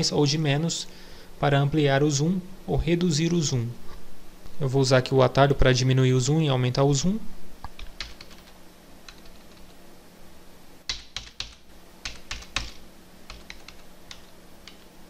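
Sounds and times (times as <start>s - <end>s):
keyboard keys clicking: 7.7s - 9.7s, 10.9s - 14.9s.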